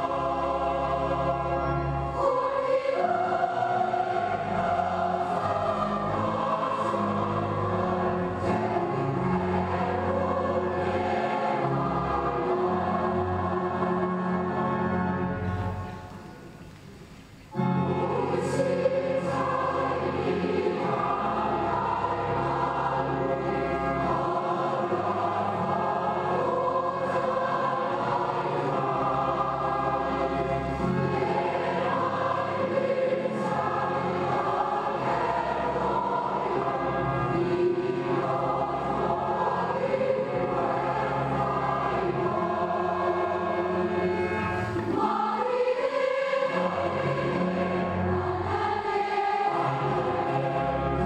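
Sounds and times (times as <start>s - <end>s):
choir holding sustained chords: 0.0s - 16.7s, 17.4s - 51.0s.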